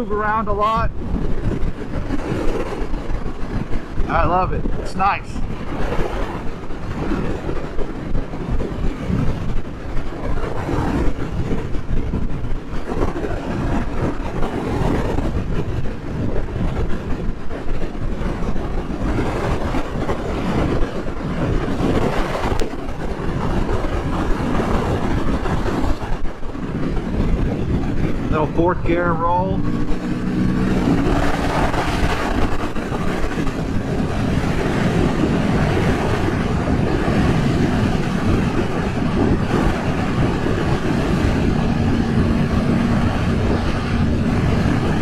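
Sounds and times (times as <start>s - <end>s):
wind buffeting microphone: 0.0s - 45.0s
motorcycle engine running: 1.0s - 45.0s.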